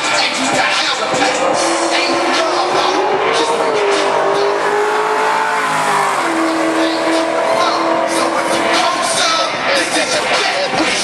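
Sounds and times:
race car engine running hard: 0.0s - 11.0s.

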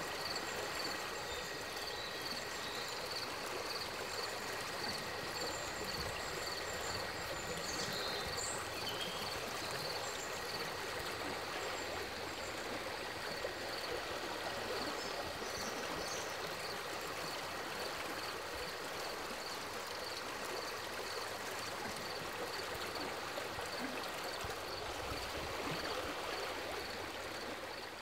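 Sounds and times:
stream rushing and gurgling: 0.0s - 28.0s.

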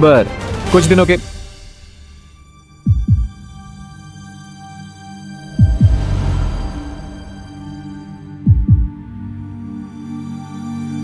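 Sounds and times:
heartbeat double thump: 2.9s - 3.5s, 5.6s - 7.1s, 8.4s - 9.0s
low music drone: 3.0s - 11.0s.

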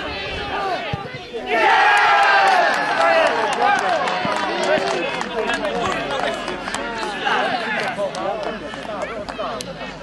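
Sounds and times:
men talking and shouting: 0.0s - 10.0s.

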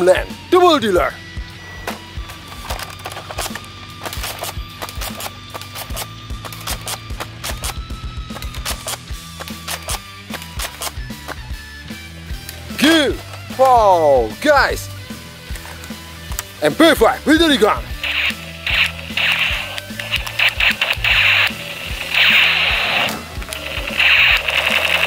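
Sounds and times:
background music: 0.0s - 25.0s
toy blaster clicks and knocks: 2.6s - 7.8s, 18.0s - 25.0s.

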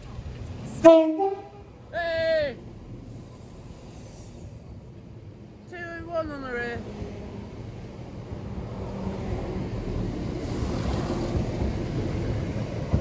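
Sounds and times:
electric train passing: 0.0s - 13.0s
train wheels rumbling: 0.0s - 13.0s.

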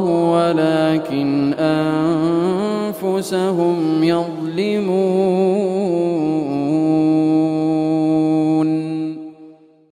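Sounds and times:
man reciting a long melodic note: 0.0s - 9.6s.

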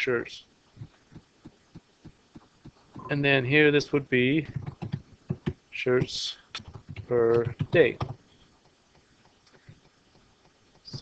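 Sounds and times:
soft low thumps: 0.8s - 3.2s, 4.4s - 11.0s.

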